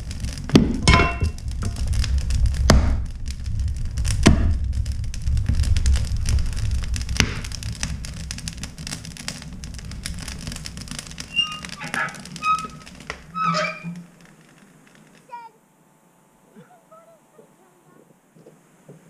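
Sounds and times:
wood fire crackling: 0:00.0 - 0:19.0.

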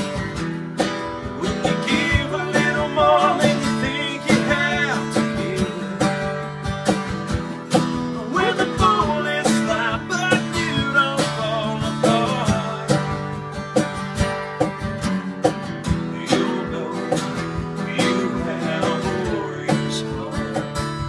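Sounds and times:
acoustic guitar strumming: 0:00.0 - 0:21.0
man singing: 0:01.3 - 0:06.4, 0:08.1 - 0:13.5, 0:15.9 - 0:21.0.

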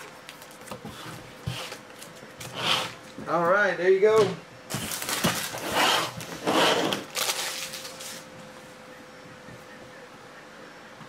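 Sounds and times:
foil wrapper crinkling: 0:04.7 - 0:05.6, 0:07.0 - 0:08.3.

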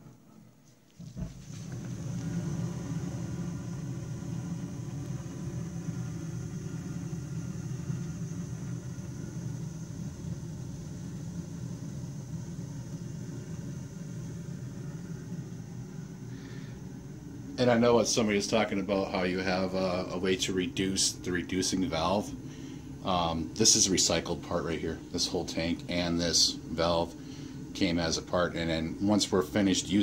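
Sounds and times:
gas boiler low rumble: 0:00.0 - 0:30.0.

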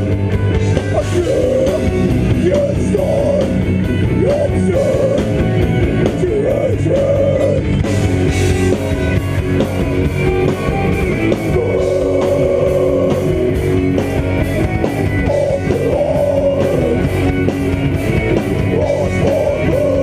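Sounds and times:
bass guitar: 0:00.0 - 0:20.0
distorted electric guitar: 0:00.0 - 0:20.0
drum kit: 0:00.0 - 0:20.0
harsh shouted vocals: 0:00.9 - 0:05.4, 0:06.1 - 0:07.7, 0:11.4 - 0:13.8, 0:15.2 - 0:17.2, 0:18.5 - 0:20.0.

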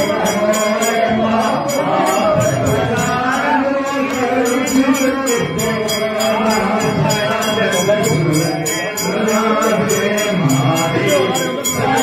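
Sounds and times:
devotional chanting: 0:00.0 - 0:12.0
metal percussion beat: 0:00.0 - 0:12.0.

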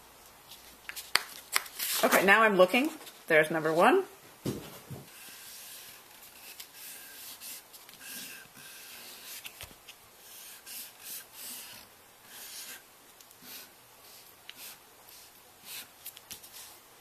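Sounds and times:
marker rubbing on paper: 0:05.1 - 0:09.6, 0:10.2 - 0:12.8, 0:13.4 - 0:16.8.

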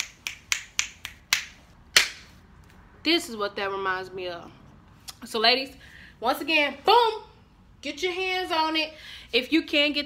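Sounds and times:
fingers snapping: 0:00.0 - 0:02.2.

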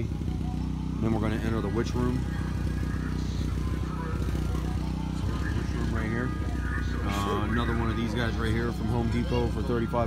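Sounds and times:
generator engine running: 0:00.0 - 0:10.0.

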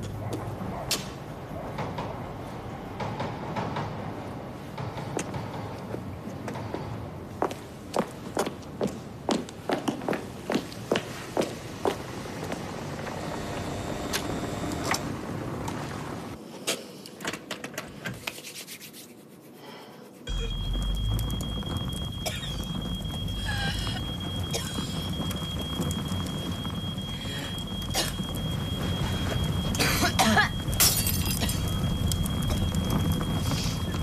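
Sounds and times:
low rumble of fire burning: 0:00.0 - 0:16.4, 0:20.3 - 0:34.0
footsteps on pavement: 0:07.4 - 0:12.7
wood crackling: 0:20.3 - 0:34.0.

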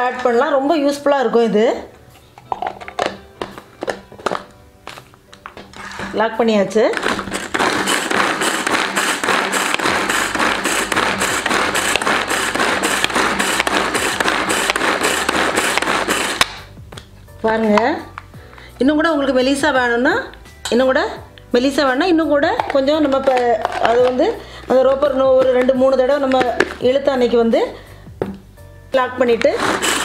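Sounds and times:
pull-cord chopper whirring: 0:07.0 - 0:16.4.

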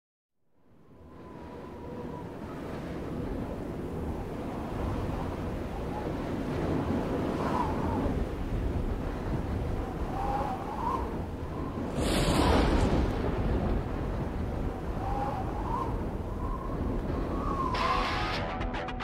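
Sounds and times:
faint wavering whistling tones: 0:09.9 - 0:12.8, 0:14.7 - 0:18.0
wind-like rushing sound effect: 0:10.1 - 0:17.9.

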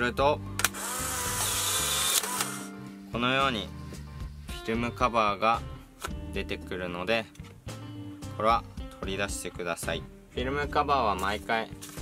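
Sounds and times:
instant camera motor running: 0:00.6 - 0:02.7.

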